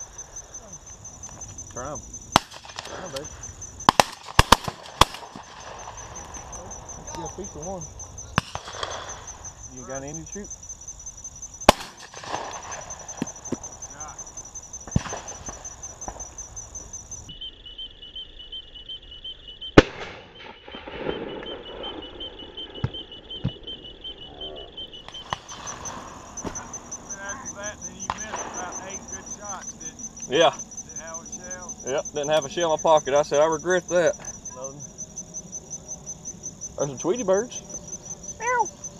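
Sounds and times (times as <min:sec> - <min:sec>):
high insect trill: 0:00.0 - 0:38.9
shotgun shot: 0:02.3 - 0:03.2, 0:03.8 - 0:05.9, 0:08.4 - 0:09.2, 0:11.7 - 0:13.3, 0:19.8 - 0:22.0, 0:28.0 - 0:28.8
faint sharp cracks: 0:02.3 - 0:06.5.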